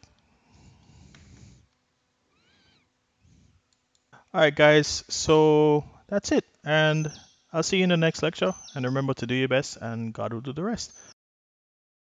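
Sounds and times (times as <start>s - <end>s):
faint pitched cry: 2.3s - 2.9s.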